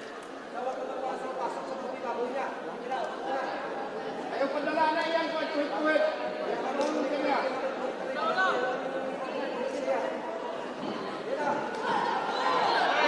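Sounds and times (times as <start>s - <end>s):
voices calling out and talking: 0.0s - 13.0s.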